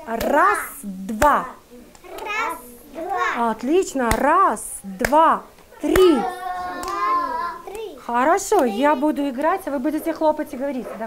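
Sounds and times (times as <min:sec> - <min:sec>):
hand clap: 0:00.2 - 0:00.4, 0:01.2 - 0:02.4, 0:04.1 - 0:04.4, 0:05.0 - 0:07.8.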